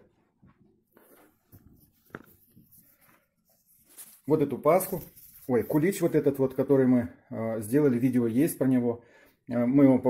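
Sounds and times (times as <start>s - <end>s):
camera handling rustle: 1.1s - 5.5s.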